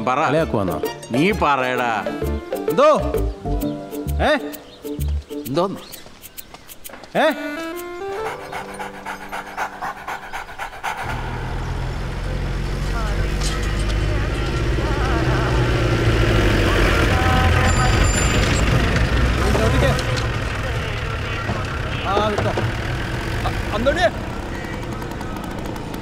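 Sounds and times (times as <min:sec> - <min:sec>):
fast short ticks: 0:04.5 - 0:11.2
jeep engine running low: 0:08.1 - 0:26.0
people's voices: 0:12.3 - 0:26.0.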